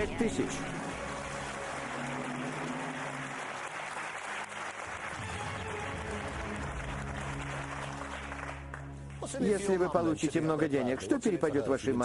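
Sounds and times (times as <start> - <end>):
audience applauding: 0.0 - 11.4.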